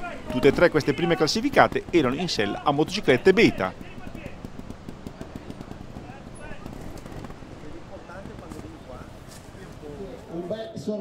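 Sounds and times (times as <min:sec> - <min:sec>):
motorcycle engine at low revs: 0:00.0 - 0:10.3
faint voices: 0:00.0 - 0:11.0.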